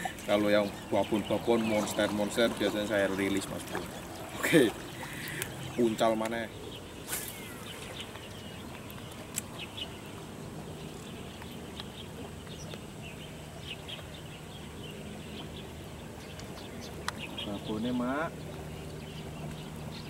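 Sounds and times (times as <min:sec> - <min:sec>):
low outdoor background: 0:00.0 - 0:20.0.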